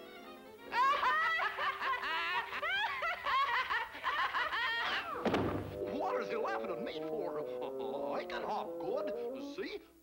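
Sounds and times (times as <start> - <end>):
cartoon character laughing: 0.7 - 5.2
orchestral music: 5.5 - 8.3.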